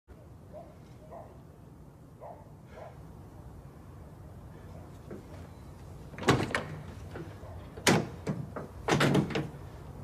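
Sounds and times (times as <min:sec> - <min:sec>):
heavy doors clunking and rattling: 0:06.1 - 0:09.8.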